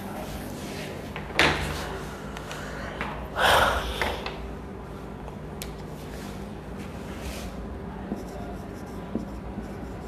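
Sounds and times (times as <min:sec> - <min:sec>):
person huffing out breath: 0:03.4 - 0:04.3.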